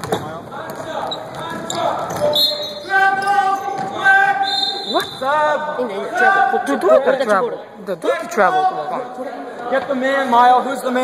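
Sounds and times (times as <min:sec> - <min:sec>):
referee's whistle blasts: 0:02.2 - 0:03.7, 0:04.3 - 0:05.4.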